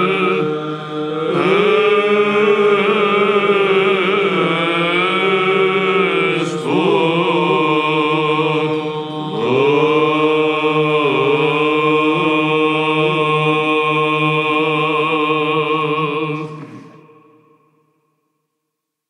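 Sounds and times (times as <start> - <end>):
male voices chanting: 0.0 - 17.3
low vocal drone: 0.0 - 17.5.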